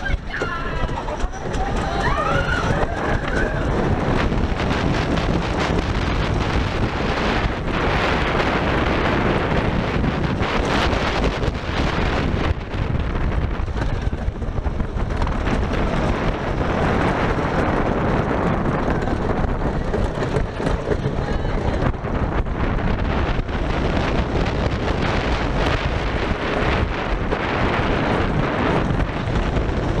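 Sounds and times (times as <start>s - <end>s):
roller coaster rumbling on track: 0.0s - 30.0s
wind buffeting microphone: 0.0s - 30.0s.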